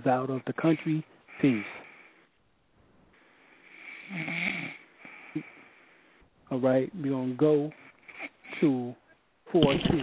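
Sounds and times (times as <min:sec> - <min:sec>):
faint broadcast line hiss: 0:00.0 - 0:10.0
person's wordless voice sound: 0:08.5 - 0:10.0.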